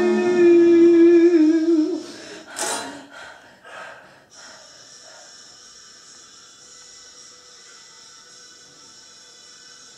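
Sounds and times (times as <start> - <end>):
faint breaths: 2.0 - 5.7.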